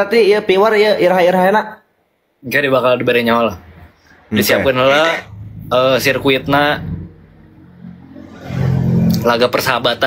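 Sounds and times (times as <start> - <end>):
low engine hum: 5.2 - 9.3.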